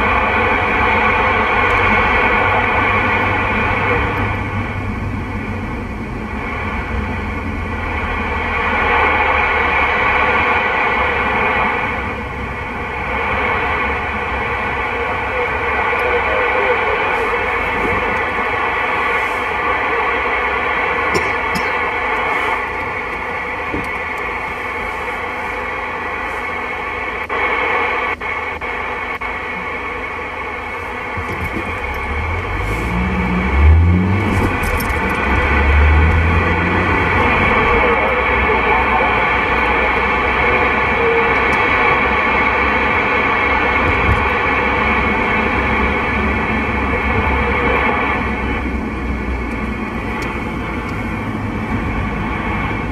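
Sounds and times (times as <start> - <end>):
radio static hiss: 0.0 - 52.9.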